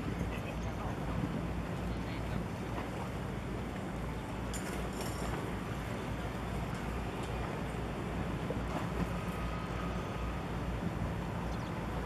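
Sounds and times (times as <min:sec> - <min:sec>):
cargo ship low rumble: 0:00.0 - 0:12.0.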